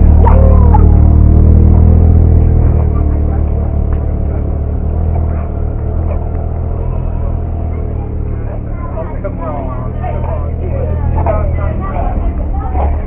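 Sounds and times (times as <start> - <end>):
car engine idling: 0.0 - 13.0
people talking: 0.0 - 13.0.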